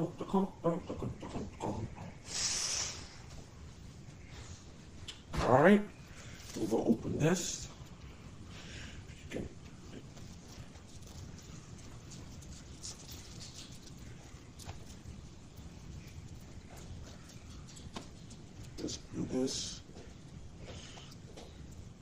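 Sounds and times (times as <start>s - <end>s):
low room hum: 0.0s - 22.0s.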